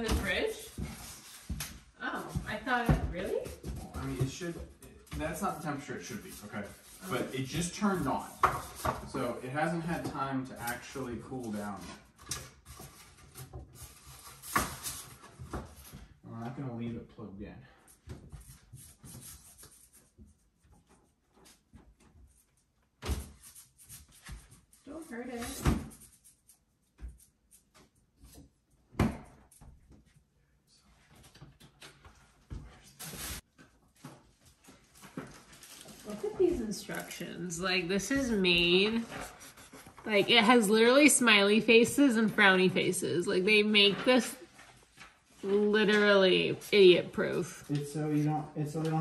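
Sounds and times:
packaging and paper rustling: 0:34.0 - 0:37.2.

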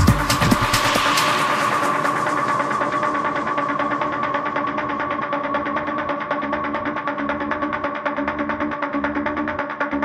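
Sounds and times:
deep kick drum: 0:00.0 - 0:01.2
electronic dance music: 0:00.0 - 0:05.0.

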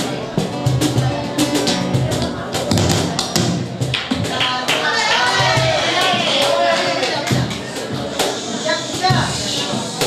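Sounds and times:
strummed flamenco guitar: 0:00.0 - 0:10.0.

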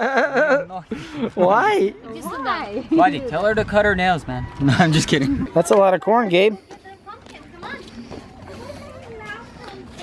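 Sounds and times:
faint children and adults talking: 0:01.2 - 0:10.0.

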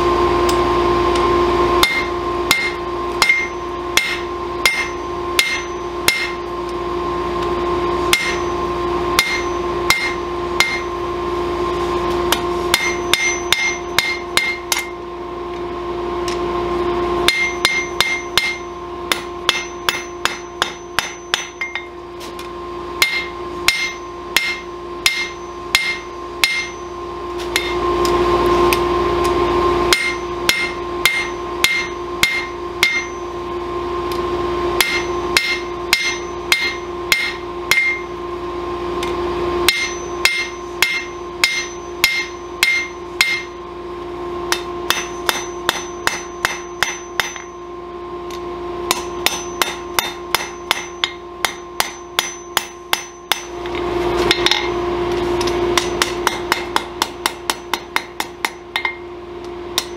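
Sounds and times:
hammer striking steel on anvil: 0:01.2 - 0:06.5, 0:08.0 - 0:11.0, 0:12.3 - 0:15.0, 0:17.2 - 0:27.9, 0:29.9 - 0:33.4, 0:34.8 - 0:38.2, 0:39.0 - 0:43.7, 0:44.5 - 0:47.6, 0:48.3 - 0:59.9.

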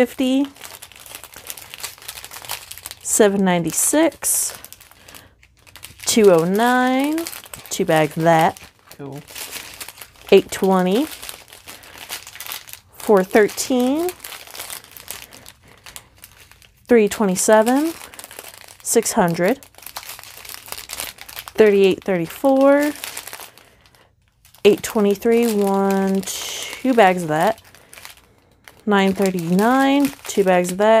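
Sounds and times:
plastic bags crinkling: 0:00.0 - 0:31.0.

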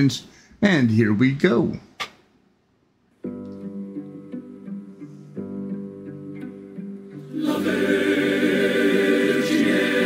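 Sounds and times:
strings playing sustained chords: 0:03.2 - 0:10.0.

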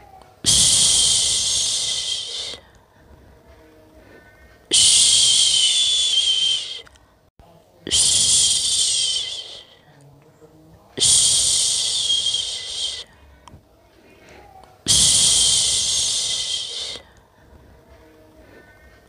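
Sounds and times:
person shushing: 0:00.4 - 0:02.7, 0:04.7 - 0:06.9, 0:07.9 - 0:09.8, 0:11.0 - 0:13.1, 0:14.4 - 0:17.1.

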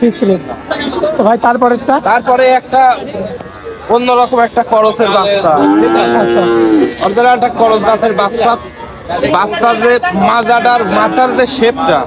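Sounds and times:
calf mooing: 0:05.5 - 0:07.1.

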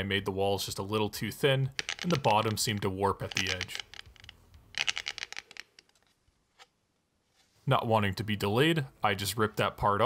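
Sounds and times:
light plastic clicks and rattles: 0:01.7 - 0:06.7.

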